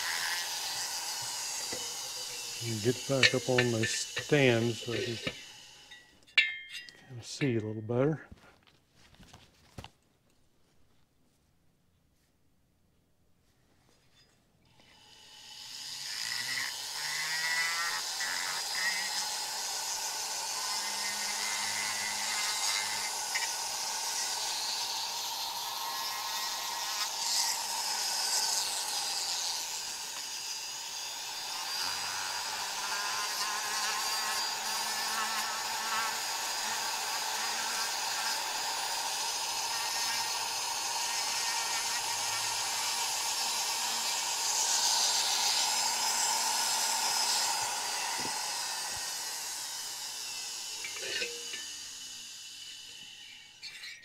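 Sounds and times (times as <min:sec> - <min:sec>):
rotary tool grinding metal: 0:00.0 - 0:07.8, 0:14.1 - 0:54.0.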